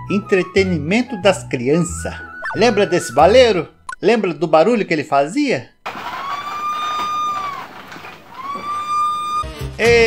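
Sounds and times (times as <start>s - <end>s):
candy stand squeaking on pivot: 5.9s - 9.5s.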